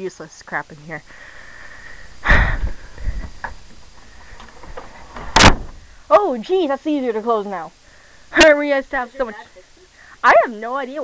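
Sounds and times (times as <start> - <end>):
door scraping shut: 3.0 - 5.9
door knocks and click: 4.4 - 5.8.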